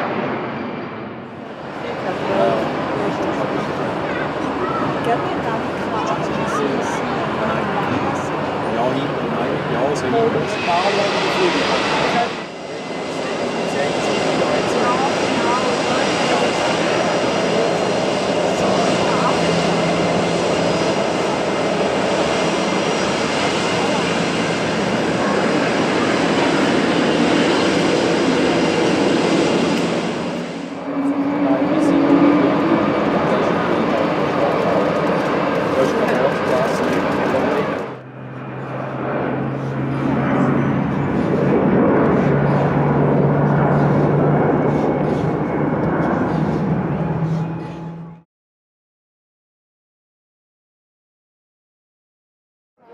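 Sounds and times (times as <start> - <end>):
jet climbing after takeoff: 0.0 - 48.2
jet engine taxiing: 0.0 - 48.2.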